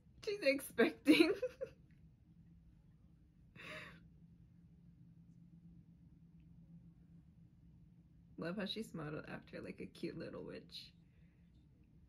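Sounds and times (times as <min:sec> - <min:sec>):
woman sighing: 0:03.6 - 0:04.0.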